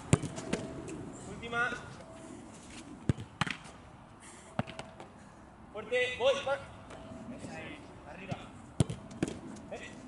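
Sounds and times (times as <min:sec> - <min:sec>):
football being kicked: 0:00.1 - 0:00.6, 0:03.1 - 0:03.6, 0:08.3 - 0:09.4.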